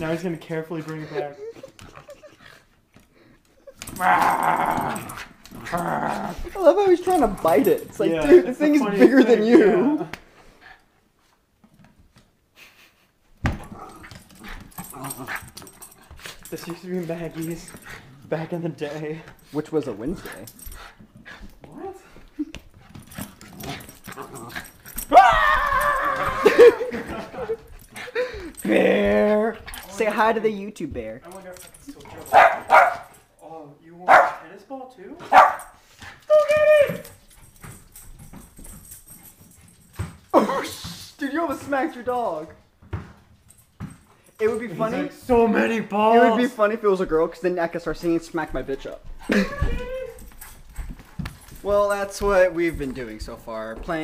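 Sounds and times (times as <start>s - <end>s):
dog paws scrabbling on wooden floor: 0.0s - 12.4s, 13.2s - 54.0s.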